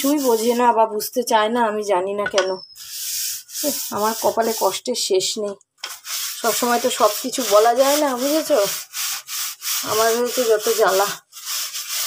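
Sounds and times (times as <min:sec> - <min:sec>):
brush scrubbing hard surface: 0:00.0 - 0:00.7, 0:02.8 - 0:04.9, 0:05.9 - 0:12.0
woman talking: 0:00.0 - 0:02.6, 0:03.6 - 0:05.6, 0:06.4 - 0:08.8, 0:09.8 - 0:11.2.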